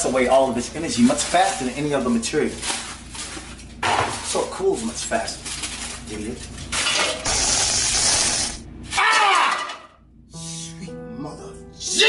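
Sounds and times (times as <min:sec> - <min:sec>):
aluminium foil crinkling: 0:00.5 - 0:08.0.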